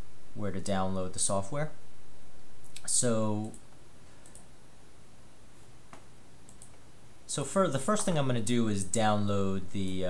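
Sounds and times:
steady background hiss: 0:00.0 - 0:10.0
computer mouse clicks: 0:04.2 - 0:04.5, 0:05.9 - 0:06.8.

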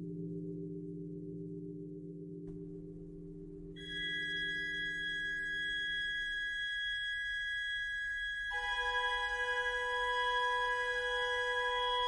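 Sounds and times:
low electronic tone cluster: 0:01.2 - 0:12.0.

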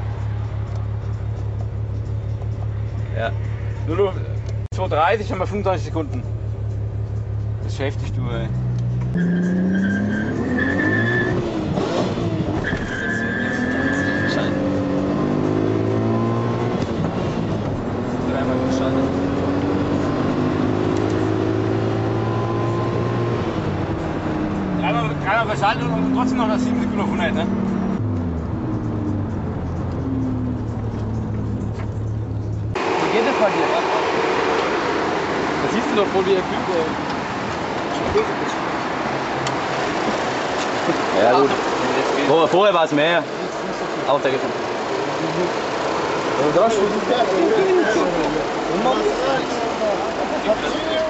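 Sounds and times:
car engine drone: 0:00.0 - 0:51.0
road noise: 0:00.0 - 0:51.0.

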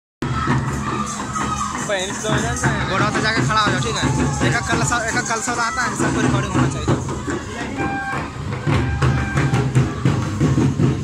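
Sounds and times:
crowd shouting and cheering: 0:00.2 - 0:11.0.

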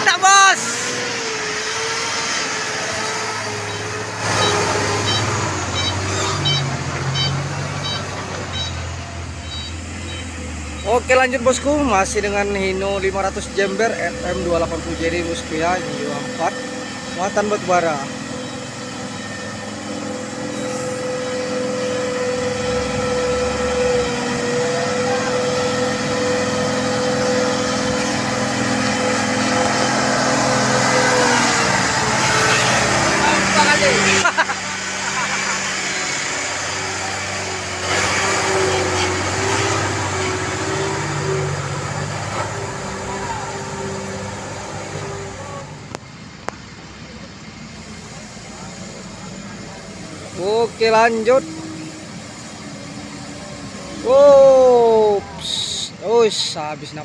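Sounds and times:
dump truck driving through mud: 0:00.0 - 0:57.0.

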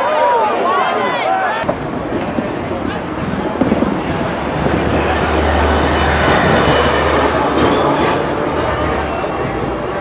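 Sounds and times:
tram wheels rumbling on rails: 0:01.6 - 0:10.0.

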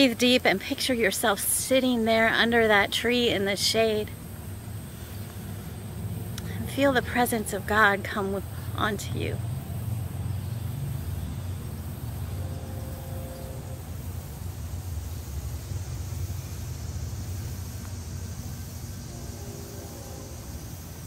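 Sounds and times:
low outdoor background rumble: 0:00.0 - 0:21.0.

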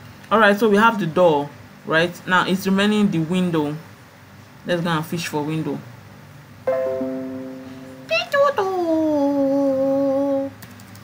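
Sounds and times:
woman humming: 0:08.9 - 0:10.5.

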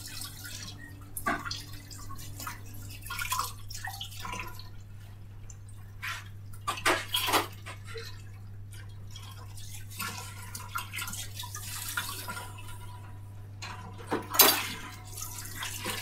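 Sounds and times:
low electrical hum: 0:00.0 - 0:16.0
water dripping and splashing: 0:00.0 - 0:16.0.

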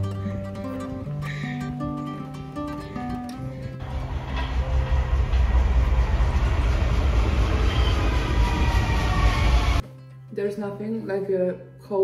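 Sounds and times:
faint falling whine: 0:03.8 - 0:09.8
train wheels rumbling on rails: 0:03.8 - 0:09.8.

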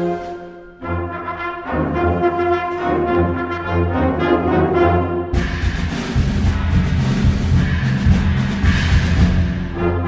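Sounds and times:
held brass chords: 0:00.0 - 0:07.8
concert band playing a march: 0:00.0 - 0:10.0.

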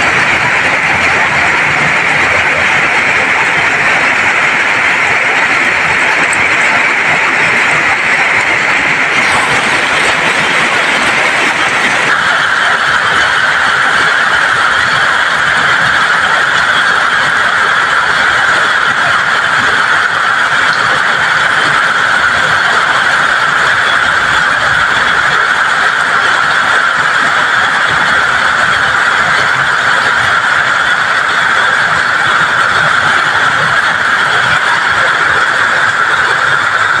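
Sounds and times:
heavy rain on a flooded road: 0:00.0 - 0:37.0.

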